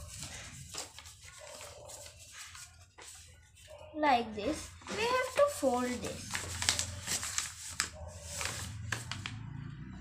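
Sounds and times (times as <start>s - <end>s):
paper being folded and creased: 0.0s - 3.7s, 4.5s - 9.4s
paper rustling: 0.0s - 3.8s, 4.5s - 9.4s.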